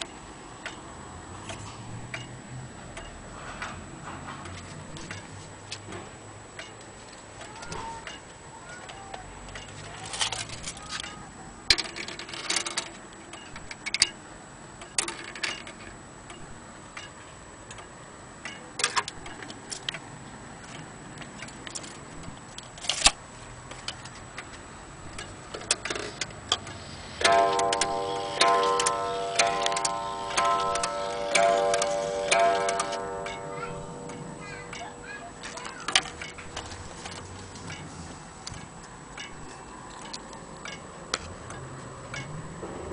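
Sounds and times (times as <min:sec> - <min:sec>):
clock ticking: 0:25.1 - 0:37.9
clock striking a gong: 0:27.2 - 0:37.0.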